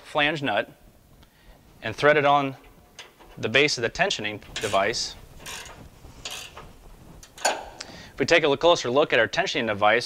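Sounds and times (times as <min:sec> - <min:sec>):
nut scraping on threaded rod: 0:03.0 - 0:07.6.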